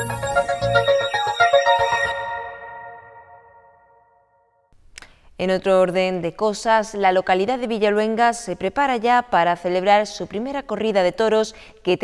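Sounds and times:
news jingle closing chord: 0.0s - 4.5s.

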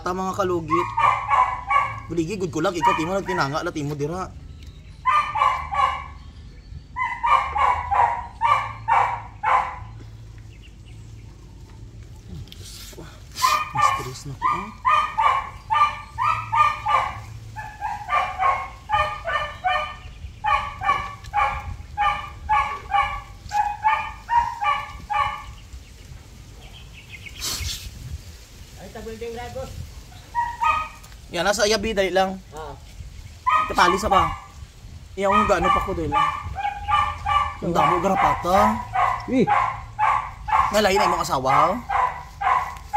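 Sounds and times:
dog barking: 0.5s - 3.7s, 5.0s - 6.2s, 7.0s - 10.0s, 13.4s - 25.6s, 30.2s - 31.1s, 33.4s - 34.6s, 35.2s - 42.9s.

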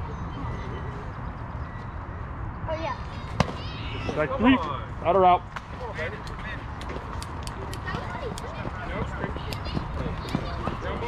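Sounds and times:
chatter of children and adults: 5.7s - 11.0s.

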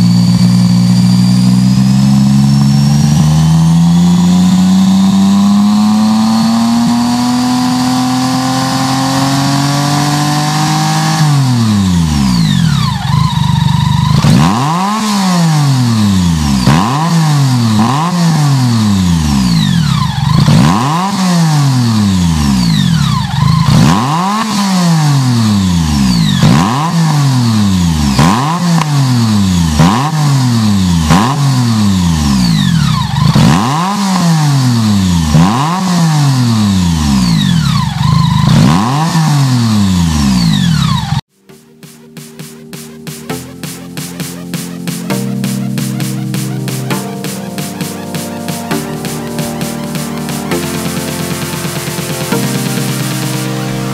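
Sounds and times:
motorcycle engine revving: 0.0s - 53.9s.

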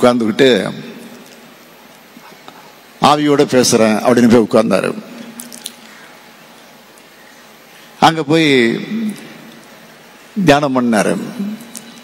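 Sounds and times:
faint hum: 0.0s - 12.0s
low steady room hiss: 0.0s - 12.0s
voice echo in hall: 7.7s - 12.0s.

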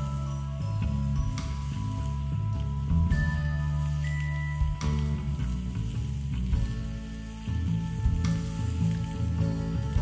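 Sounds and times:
background music: 0.0s - 10.0s
steak sizzling in a skillet: 0.0s - 10.0s.

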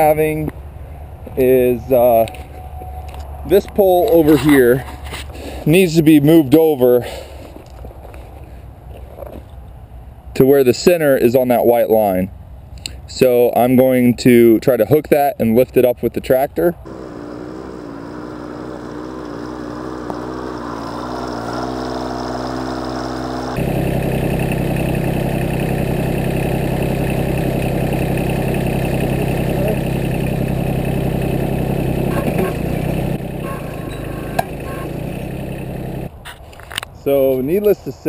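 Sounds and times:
tractor engine running: 16.9s - 36.1s.

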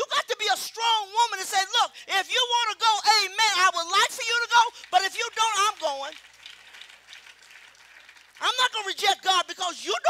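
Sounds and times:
congregation clapping: 3.7s - 9.5s.

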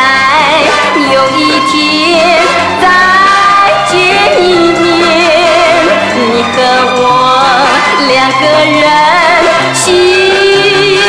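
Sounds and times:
band accompaniment: 0.0s - 11.0s
woman singing with vibrato: 0.0s - 11.0s.

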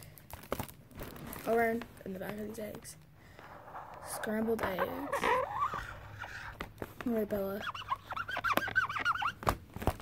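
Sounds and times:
marker squeaking on a surface: 3.4s - 10.0s.

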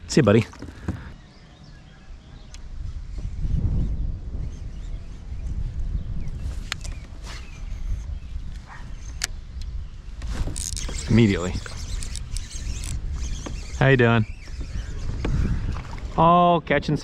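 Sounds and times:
wind buffeting microphone: 0.0s - 17.0s
sharp clicks: 10.6s - 13.4s.

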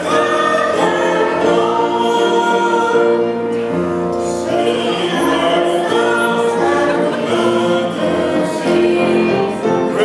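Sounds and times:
group singing slow sacred song: 0.0s - 10.0s.

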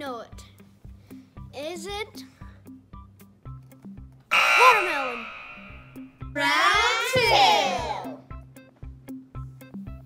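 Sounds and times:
light background music: 0.0s - 4.3s, 6.0s - 10.0s
wrong-answer buzzer: 4.3s - 6.1s.

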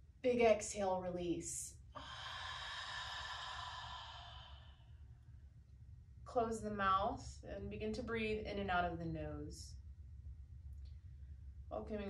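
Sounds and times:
woman exhaling breathy sigh: 2.0s - 4.9s.

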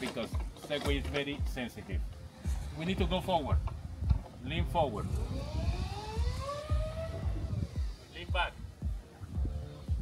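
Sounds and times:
electric motors whining: 4.8s - 8.3s.

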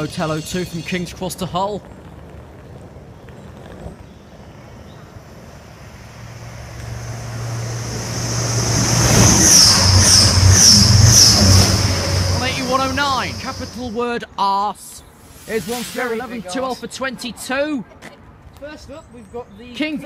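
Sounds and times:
train engine hum: 0.0s - 14.0s, 15.1s - 16.9s
high rhythmic train clatter: 6.5s - 14.0s.

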